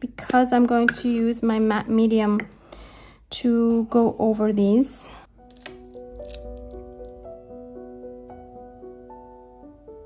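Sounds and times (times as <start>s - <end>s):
soft piano-like background music: 3.7s - 10.0s.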